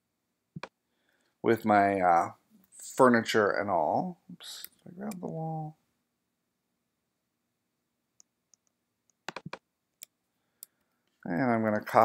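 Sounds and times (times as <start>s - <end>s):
computer keyboard and mouse clicks: 8.2s - 10.8s.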